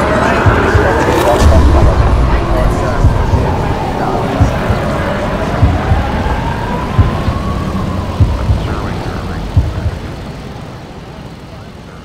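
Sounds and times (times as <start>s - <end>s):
deep thuds: 0.0s - 10.3s
rising tone: 0.0s - 10.7s
low rumbling drone: 0.0s - 12.0s.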